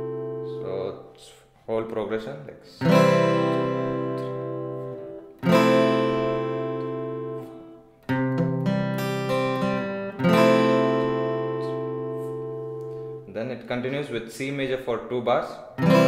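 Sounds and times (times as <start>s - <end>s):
picked guitar arpeggio: 0.0s - 1.2s, 2.8s - 14.0s, 15.8s - 16.0s
acoustic guitar chords: 0.0s - 2.0s, 2.8s - 14.4s, 15.6s - 16.0s.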